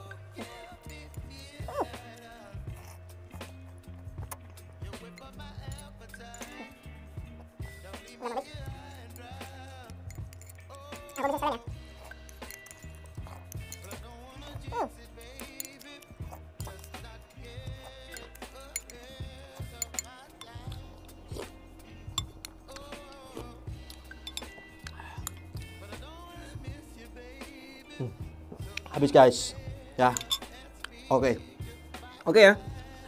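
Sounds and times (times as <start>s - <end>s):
spoon clinking against bowl: 0.0s - 3.0s, 4.3s - 6.8s, 7.9s - 32.2s
music with steady bass beat: 0.0s - 33.0s.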